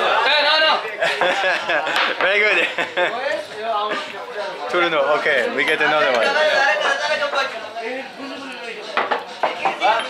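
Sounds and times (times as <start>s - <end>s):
background voices chatter: 0.0s - 10.0s.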